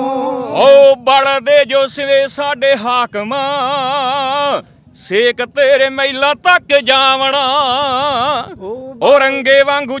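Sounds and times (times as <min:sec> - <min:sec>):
man singing into a microphone: 0:00.6 - 0:10.0.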